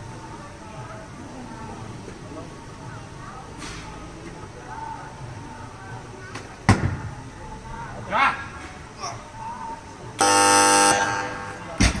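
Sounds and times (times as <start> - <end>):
buzzer tone: 10.2 - 11.6.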